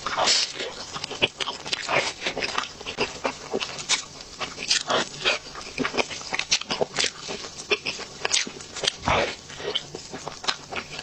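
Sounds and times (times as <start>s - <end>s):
person chewing with wet smacks: 0.0s - 11.0s.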